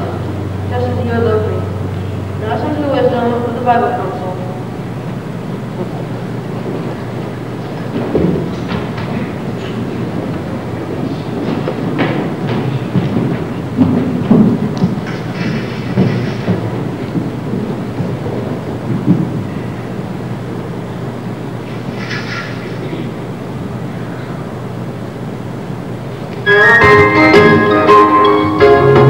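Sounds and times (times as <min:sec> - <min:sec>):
faint murmurs: 0:00.0 - 0:25.4
children shuffling on stage: 0:05.0 - 0:24.6.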